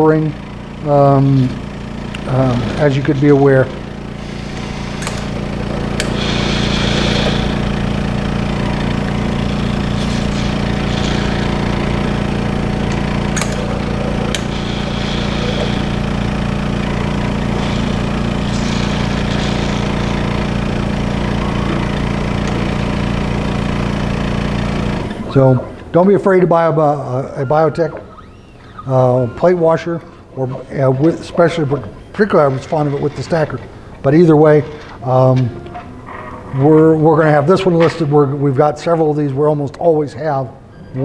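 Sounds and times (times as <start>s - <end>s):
vacuum pump pulsing hum: 0.0s - 41.0s
short hissing bursts: 3.8s - 8.1s, 9.2s - 23.4s
sharp valve clicks: 4.6s - 7.4s, 12.8s - 15.6s.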